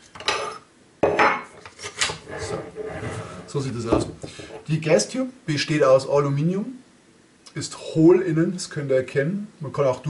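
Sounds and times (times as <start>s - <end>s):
metal scraping against metal: 1.8s - 3.7s.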